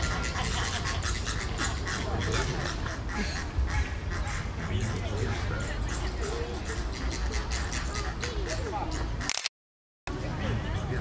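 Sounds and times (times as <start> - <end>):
flamingos honking: 0.0 - 9.3.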